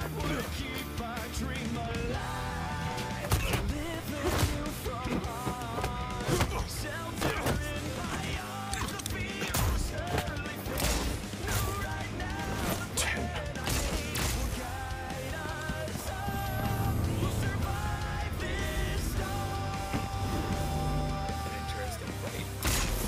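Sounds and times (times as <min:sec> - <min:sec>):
battle music: 0:00.0 - 0:23.0
gunshot sound effects: 0:22.6 - 0:23.0.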